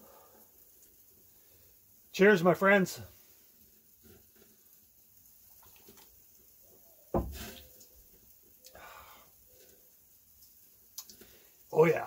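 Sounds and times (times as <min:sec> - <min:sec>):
loud breathy burst: 0:08.7 - 0:09.4.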